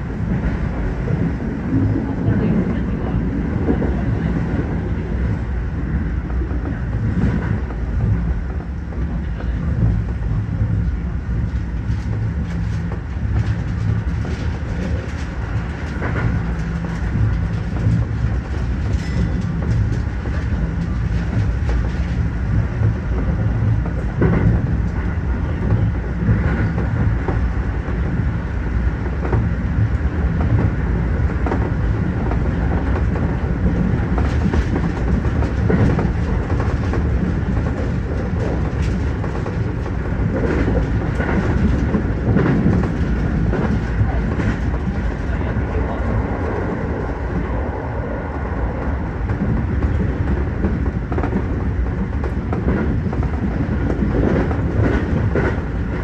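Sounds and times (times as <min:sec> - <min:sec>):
train wheels rumbling on track: 0:00.0 - 0:56.0.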